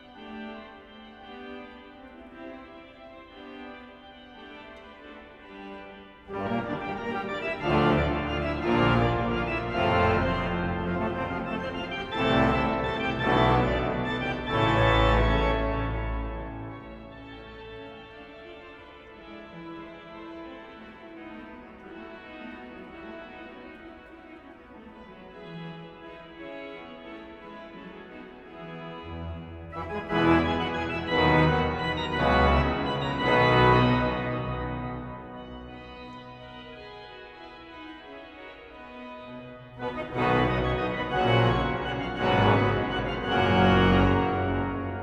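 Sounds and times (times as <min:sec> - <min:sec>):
pipe organ chords: 0:00.0 - 0:18.6, 0:27.6 - 0:45.0.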